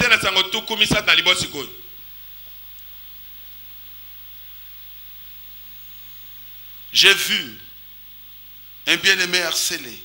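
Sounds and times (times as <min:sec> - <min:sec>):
faint low hum: 0:00.0 - 0:10.0
steady hiss: 0:00.0 - 0:10.0.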